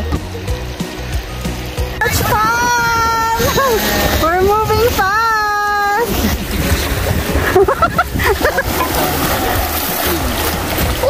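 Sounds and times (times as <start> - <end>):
music: 0.0 - 11.0
water rushing over rocks: 0.0 - 11.0.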